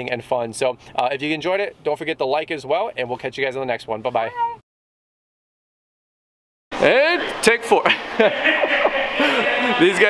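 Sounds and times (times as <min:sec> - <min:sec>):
men talking and laughing: 0:06.8 - 0:10.0.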